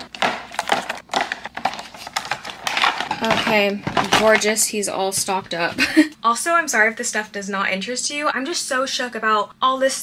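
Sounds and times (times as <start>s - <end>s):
plastic pouches clicking into bin: 0.0s - 4.6s.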